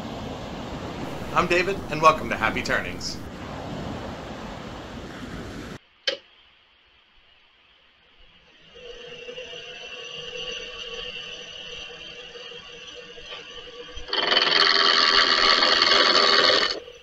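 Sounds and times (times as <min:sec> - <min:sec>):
loud rushing noise: 0:00.8 - 0:05.8
lathe motor whining: 0:01.0 - 0:03.3, 0:08.7 - 0:17.0.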